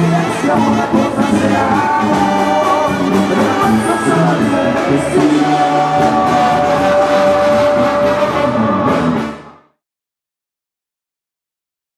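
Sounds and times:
brass band with tuba and drums: 0:00.0 - 0:09.7.

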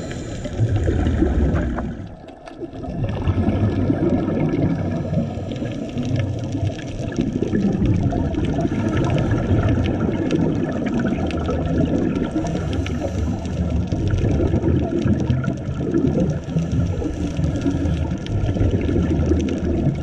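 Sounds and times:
underwater rumble of water: 0:00.0 - 0:20.0
fine crackle: 0:04.4 - 0:20.0.

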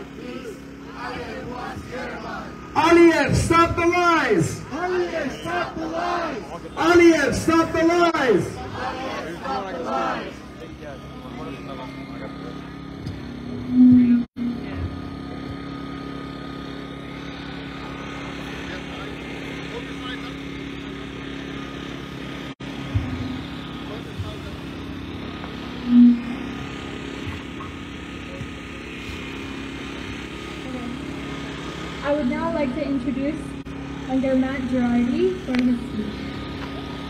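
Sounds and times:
low mechanical hum: 0:00.0 - 0:37.0
short loud low tones: 0:12.7 - 0:18.5, 0:22.6 - 0:29.4.

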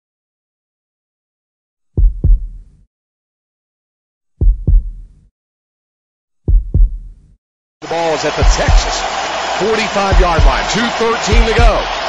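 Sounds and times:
heartbeat thumps: 0:02.0 - 0:02.8, 0:04.4 - 0:05.3, 0:06.5 - 0:07.3, 0:08.4 - 0:09.0, 0:10.1 - 0:12.0
stadium broadcast audio: 0:07.8 - 0:12.0.

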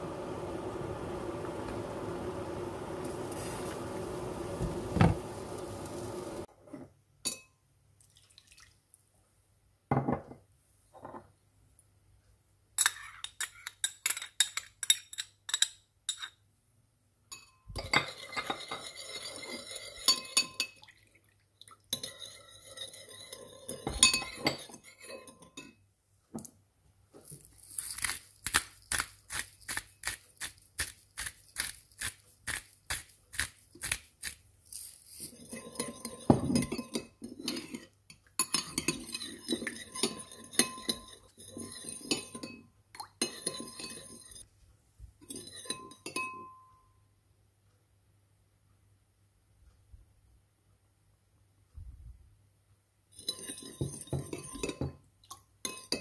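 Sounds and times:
metal spoon clinking in bowl: 0:07.2 - 0:07.5, 0:12.8 - 0:16.4, 0:17.3 - 0:20.8, 0:21.9 - 0:25.8, 0:34.8 - 0:44.5, 0:45.3 - 0:46.9, 0:53.2 - 0:55.0, 0:55.6 - 0:56.0.

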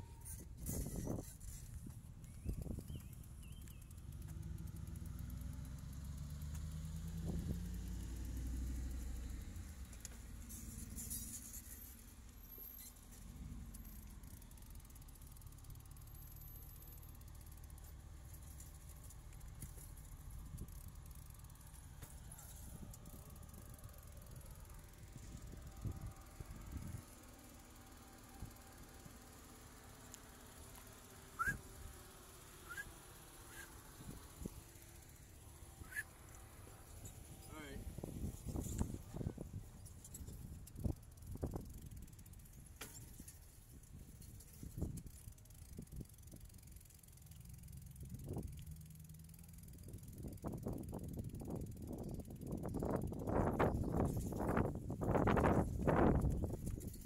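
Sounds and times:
vehicle engine humming: 0:00.0 - 0:57.0
wind rumble on microphone: 0:00.2 - 0:03.6, 0:07.2 - 0:08.2, 0:24.4 - 0:27.0, 0:37.1 - 0:42.1, 0:49.9 - 0:57.0
bird chirps: 0:02.2 - 0:04.0, 0:31.4 - 0:31.6, 0:32.6 - 0:32.9, 0:35.8 - 0:36.2.

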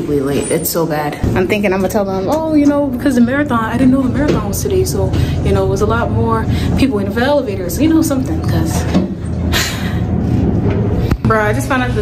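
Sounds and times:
elevator mechanical rumble: 0:00.0 - 0:12.0.

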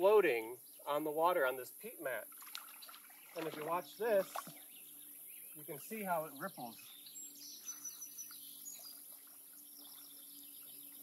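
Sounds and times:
bird chirping: 0:02.7 - 0:11.0.

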